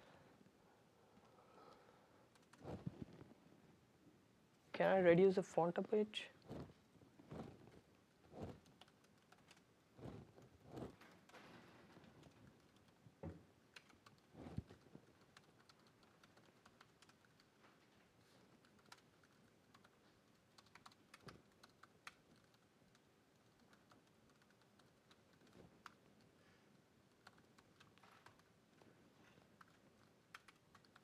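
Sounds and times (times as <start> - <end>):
faint laptop keyboard typing: 1.1 - 3.5, 6.2 - 31.0.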